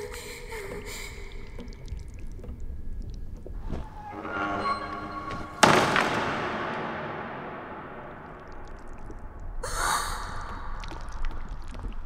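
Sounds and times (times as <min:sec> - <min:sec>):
steady low rumble: 0:06.2 - 0:09.6.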